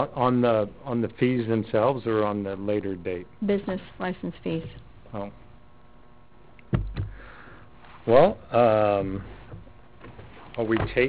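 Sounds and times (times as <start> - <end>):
low steady room hum: 0.0 - 11.0
soft breath: 7.1 - 8.0.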